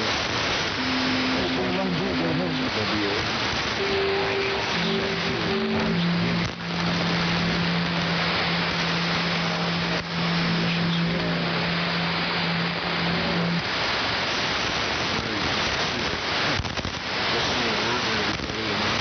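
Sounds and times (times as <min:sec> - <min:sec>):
steady low tone: 0:00.0 - 0:16.6
radio static hiss: 0:00.0 - 0:19.0.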